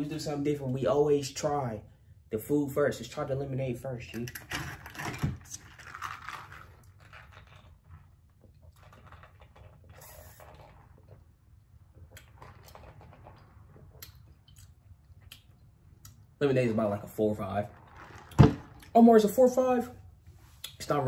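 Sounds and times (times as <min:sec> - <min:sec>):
sipping through a straw: 0:08.8 - 0:11.2.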